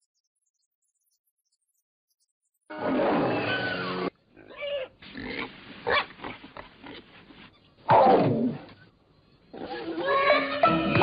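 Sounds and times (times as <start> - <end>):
warthog squealing: 2.7 - 5.4, 9.5 - 11.0.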